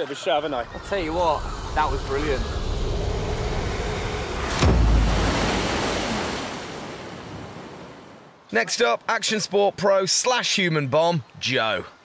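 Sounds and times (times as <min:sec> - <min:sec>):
rushing water spray: 0:03.1 - 0:07.4
heavy splash into water: 0:04.4 - 0:07.8.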